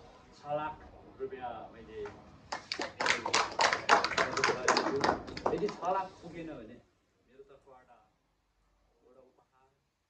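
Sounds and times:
people clapping: 0:02.5 - 0:06.0.

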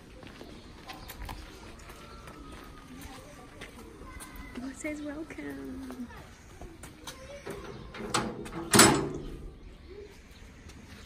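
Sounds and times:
metal gate clanking: 0:07.4 - 0:09.6.

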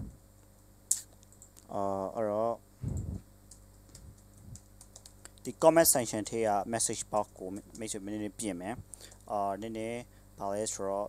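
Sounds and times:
man talking: 0:01.7 - 0:02.6, 0:05.4 - 0:11.0.

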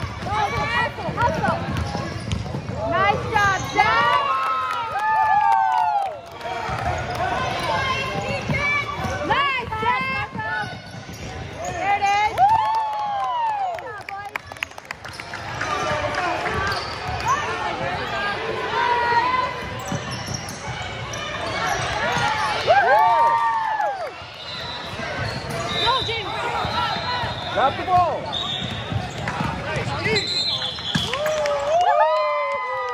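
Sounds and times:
basketball bouncing: 0:00.0 - 0:04.1, 0:06.6 - 0:12.6, 0:27.8 - 0:30.0
voices in large gym: 0:00.0 - 0:32.9
sneakers squeaking on gym floor: 0:00.1 - 0:04.2, 0:06.7 - 0:12.4, 0:15.0 - 0:18.4, 0:19.3 - 0:22.6, 0:24.2 - 0:31.2.

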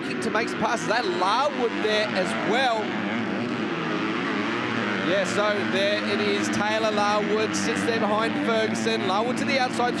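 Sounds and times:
motocross bikes revving: 0:00.0 - 0:10.0.

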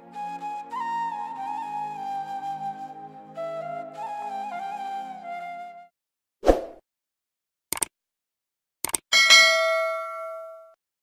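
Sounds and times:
bright double bell ding: 0:09.1 - 0:10.8.

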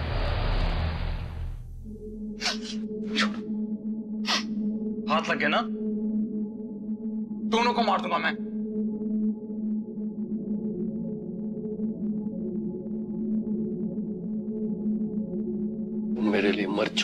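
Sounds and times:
low synth drone: 0:00.0 - 0:05.1.

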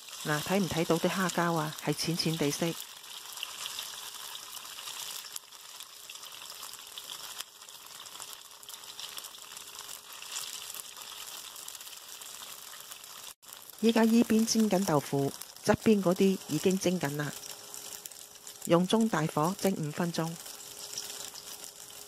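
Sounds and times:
oil sizzling in a wok: 0:00.0 - 0:22.0.

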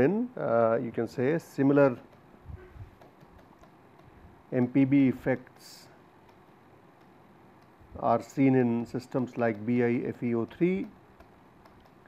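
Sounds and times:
stylus tapping and scratching: 0:01.8 - 0:04.8, 0:06.2 - 0:12.0.

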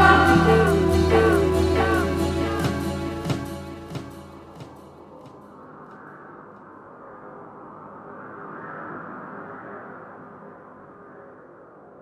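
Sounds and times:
soft ambient music: 0:00.0 - 0:05.8.

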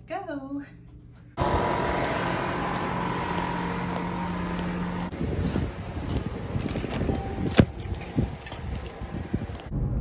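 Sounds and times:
loud mechanical drone: 0:01.4 - 0:07.6.

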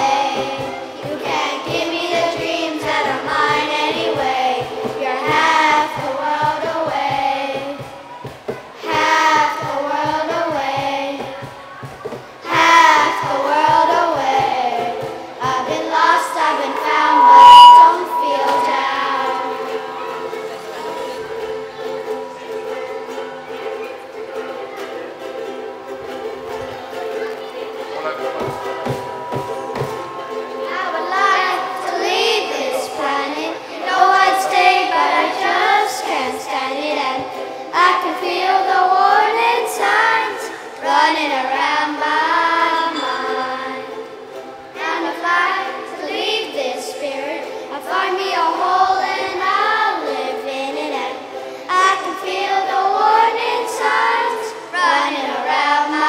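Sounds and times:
children singing: 0:00.0 - 0:08.0, 0:08.7 - 0:26.5, 0:27.4 - 0:56.0
cajon: 0:00.0 - 0:17.8
ukuleles strumming: 0:00.0 - 0:56.0
loud steady high note: 0:15.7 - 0:21.0, 0:28.2 - 0:36.1.

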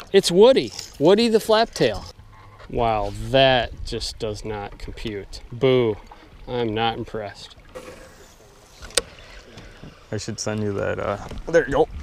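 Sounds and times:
boat on river background: 0:00.0 - 0:12.0.

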